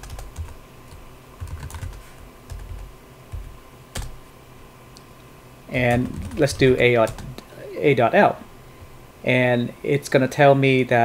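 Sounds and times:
typing on a keyboard: 0.0 - 0.6, 1.4 - 4.1, 5.9 - 7.2.

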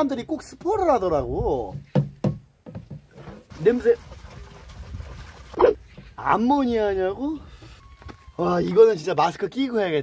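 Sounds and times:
liquid pouring into bucket: 3.4 - 5.6.

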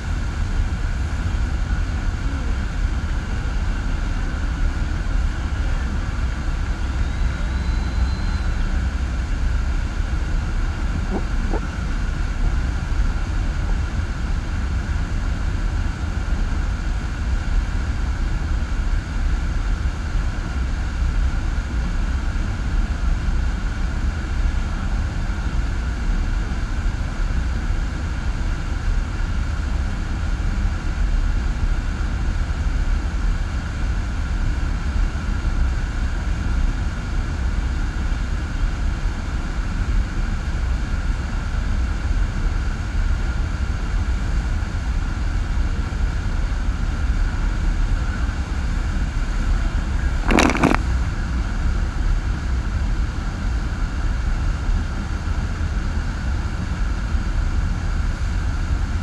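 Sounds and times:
water rushing with low rumble: 0.0 - 33.3, 38.8 - 59.0.

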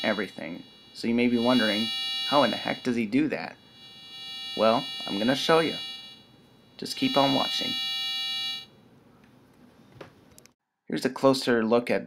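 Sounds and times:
buzzy electronic tone: 0.0 - 8.7.

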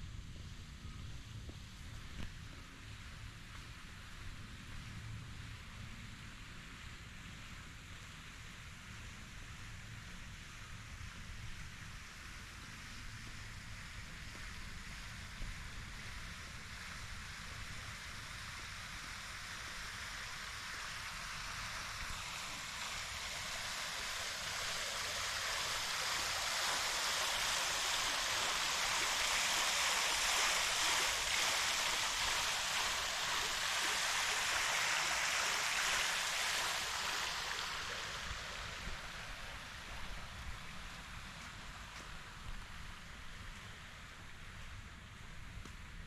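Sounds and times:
water splashing in a fountain: 1.6 - 46.0.

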